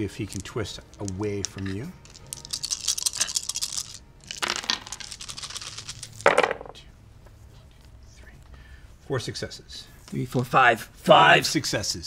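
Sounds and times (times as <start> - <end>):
dice rattling in hands: 0.0 - 6.7.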